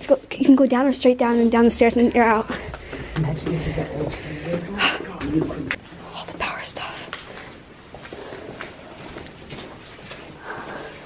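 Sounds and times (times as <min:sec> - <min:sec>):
whispered voices: 0:02.2 - 0:11.0.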